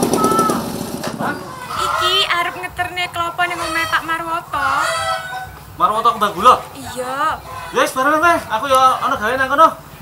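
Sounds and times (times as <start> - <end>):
rooster crowing: 1.3 - 5.6.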